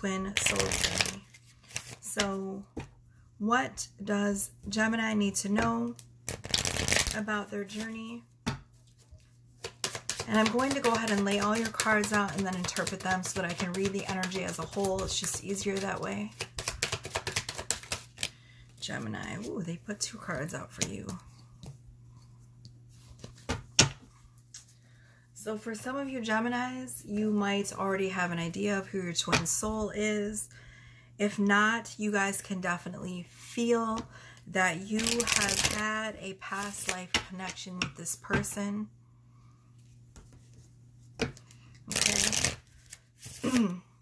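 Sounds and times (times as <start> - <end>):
low steady hum: 0.0 - 44.0
cards being shuffled: 0.3 - 2.2, 5.9 - 7.9, 8.8 - 18.3, 35.0 - 35.8, 36.5 - 37.3, 40.2 - 43.8
cards tapping and clicking: 9.6 - 18.3.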